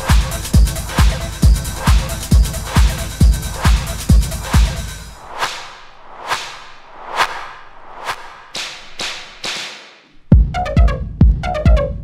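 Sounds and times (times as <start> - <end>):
percussion hits with reverb: 0.0 - 10.5
electronic dance music: 0.0 - 11.9.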